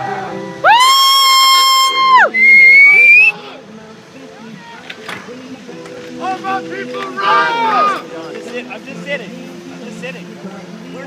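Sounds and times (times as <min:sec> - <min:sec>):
loud whistle notes: 0:00.7 - 0:03.4.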